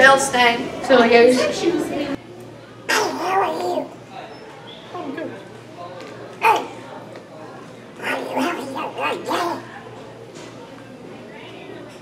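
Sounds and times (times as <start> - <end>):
school hallway background: 0.0 - 12.0
boy's voice syllables: 8.0 - 9.7.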